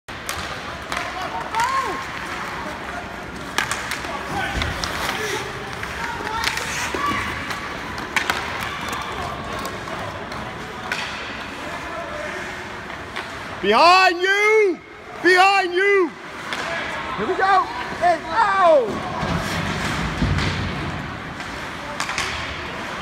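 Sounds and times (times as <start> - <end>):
hockey sticks and puck clacking: 0.1 - 14.7, 15.8 - 23.0
rink hubbub: 0.1 - 23.0.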